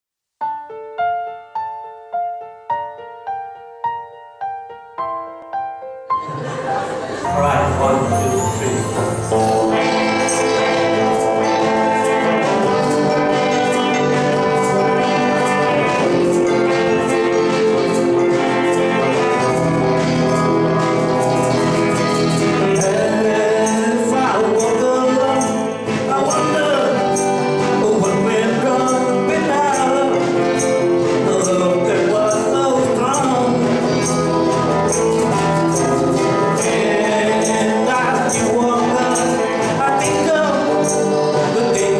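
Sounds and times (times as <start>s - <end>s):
guitars playing sustained chords: 6.2s - 41.9s
tambourine hits: 7.3s - 41.9s.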